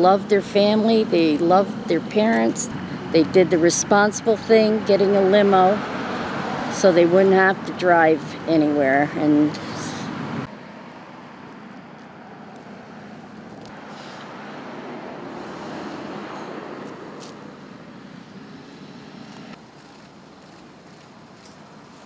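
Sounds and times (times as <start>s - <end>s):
traffic noise: 0.0s - 22.0s
vehicle passing: 0.0s - 22.0s.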